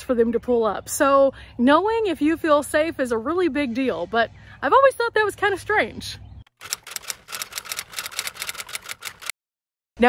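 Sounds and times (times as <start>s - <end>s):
rapid sharp clicks: 6.5s - 9.3s.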